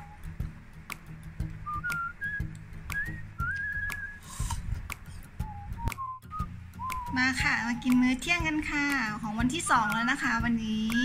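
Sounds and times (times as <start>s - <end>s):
whistled melody: 0.0s - 0.5s, 1.6s - 9.2s.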